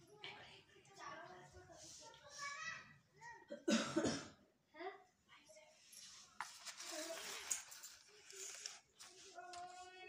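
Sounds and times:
person coughing: 0:03.5 - 0:04.4.

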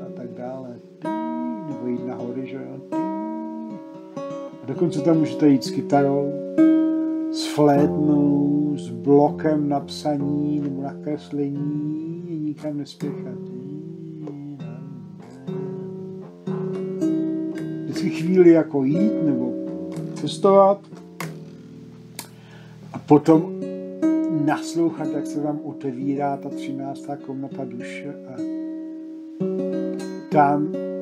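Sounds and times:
guitar strumming slow chords: 0:00.0 - 0:31.0.

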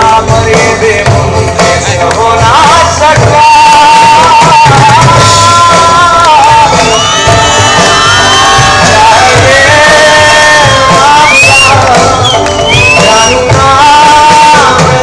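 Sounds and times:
acoustic and electric guitars: 0:00.0 - 0:15.0
drums: 0:00.0 - 0:15.0
man singing: 0:00.0 - 0:15.0
tabla: 0:00.0 - 0:15.0
audience shouting: 0:06.4 - 0:13.4.

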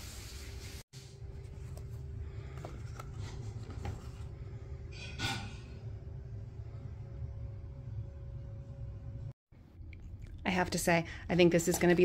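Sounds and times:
steady low hum: 0:01.0 - 0:12.0.

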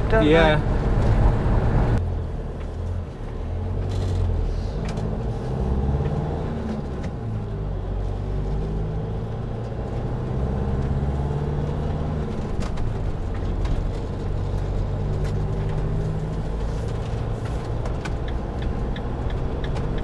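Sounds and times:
motorhome engine: 0:00.0 - 0:20.0
road noise: 0:00.0 - 0:20.0.

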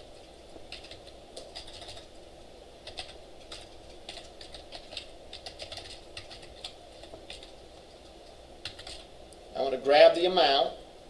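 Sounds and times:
low room hum: 0:00.0 - 0:11.0
keyboard typing: 0:00.1 - 0:02.2, 0:02.8 - 0:09.1.

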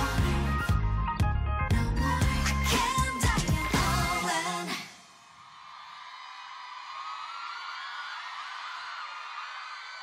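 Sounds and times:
audience cheering and screaming: 0:05.2 - 0:10.0.

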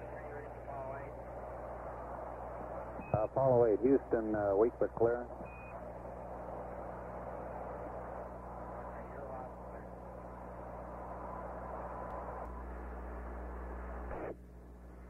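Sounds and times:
faint unintelligible radio voices: 0:00.0 - 0:12.4
radio static hiss: 0:00.0 - 0:15.0
steady hum: 0:00.0 - 0:15.0.

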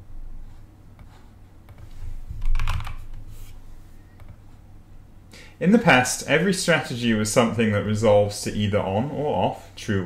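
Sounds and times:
typing on computer keyboard: 0:02.4 - 0:03.0.

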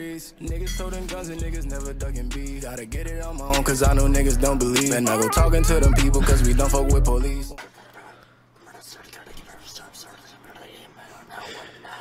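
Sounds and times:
loud rap music: 0:00.0 - 0:07.6
faint speech: 0:04.9 - 0:07.1.

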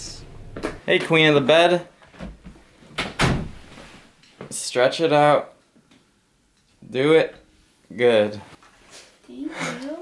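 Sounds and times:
low rumble: 0:00.0 - 0:00.8.

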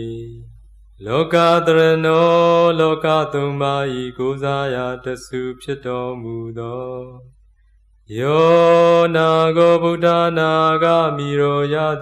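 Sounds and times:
man chanting verses: 0:08.1 - 0:12.0.

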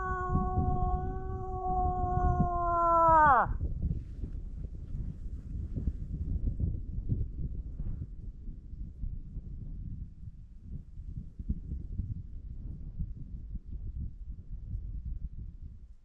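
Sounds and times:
low rumbling noise: 0:00.0 - 0:03.5
moose call imitation: 0:00.0 - 0:03.5.

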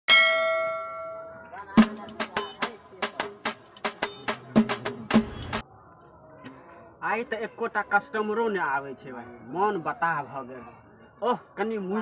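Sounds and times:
metallic bell-like clang: 0:00.1 - 0:01.5.

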